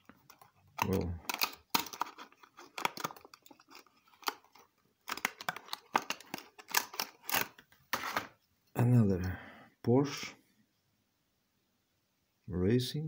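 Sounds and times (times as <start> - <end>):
plastic case clicks and scrapes: 0.1 - 8.3.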